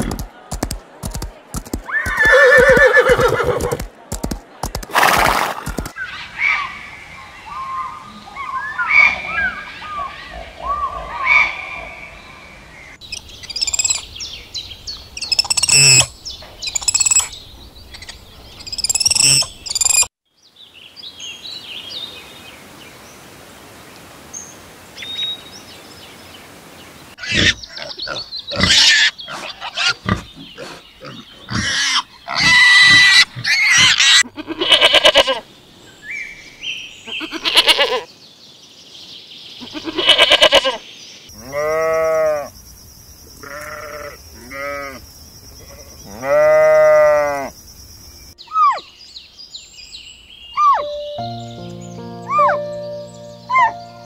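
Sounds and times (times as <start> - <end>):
goat bleating: 32.3 - 35.4, 37.2 - 38.0, 39.7 - 40.8, 43.4 - 45.0.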